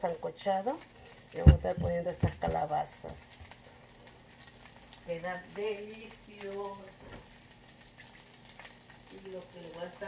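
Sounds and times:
food frying in oil: 0:00.0 - 0:10.0.

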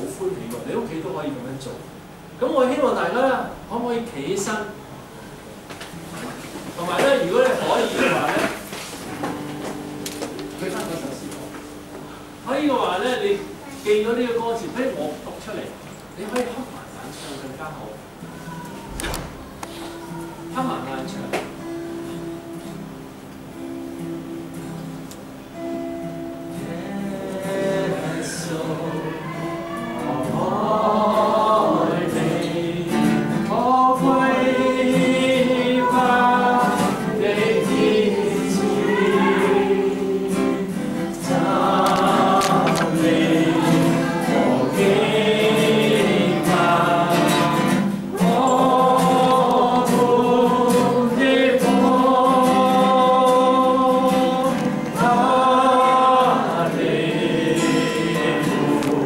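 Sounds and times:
congregation singing a hymn: 0:06.7 - 0:08.6, 0:26.5 - 0:59.0.

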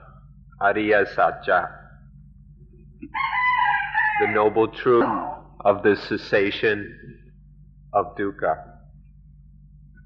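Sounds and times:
low steady hum: 0:00.0 - 0:10.0
rooster crowing: 0:03.1 - 0:04.8.

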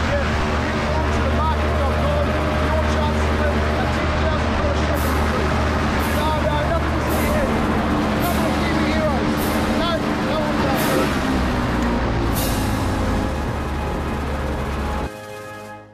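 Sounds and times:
airboat engine and propeller drone: 0:00.0 - 0:15.7.

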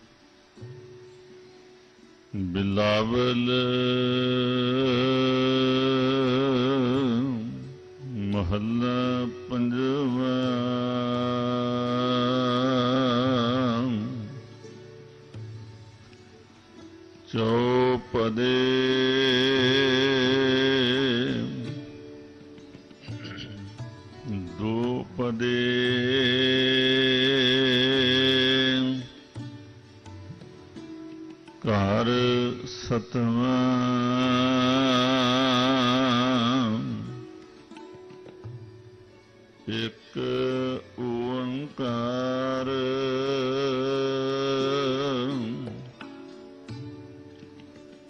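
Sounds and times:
person singing devotional song: 0:02.3 - 0:15.2, 0:17.2 - 0:37.9, 0:39.4 - 0:46.9
man chanting: 0:02.4 - 0:14.6, 0:17.3 - 0:21.9, 0:23.1 - 0:29.2, 0:31.6 - 0:37.3, 0:39.6 - 0:46.0.

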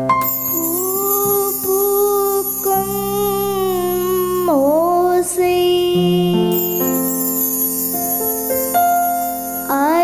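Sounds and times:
keyboard accompaniment: 0:00.0 - 0:10.0.

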